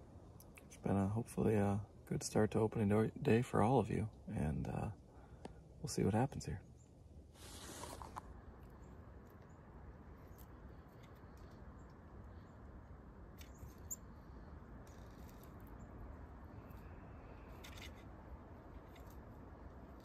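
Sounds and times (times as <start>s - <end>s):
steady low hiss: 0.0s - 20.0s.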